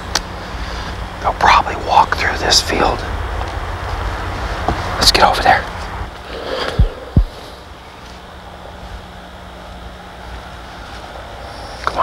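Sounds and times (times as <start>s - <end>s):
wind rumbling on microphone: 0.0s - 7.8s
faint steady hum: 0.0s - 12.0s
dull low thumps: 6.0s - 7.5s.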